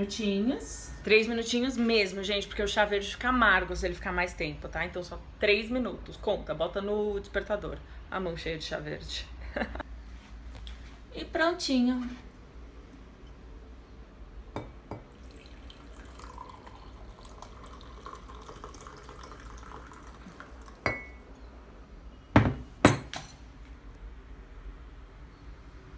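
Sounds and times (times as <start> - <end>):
tea pouring into glass mug: 14.6 - 21.3.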